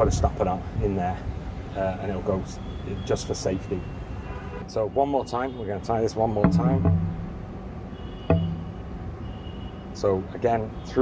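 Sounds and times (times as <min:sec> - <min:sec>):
urban background hum: 0:00.0 - 0:10.8
short knock: 0:06.5 - 0:07.5, 0:08.3 - 0:08.9.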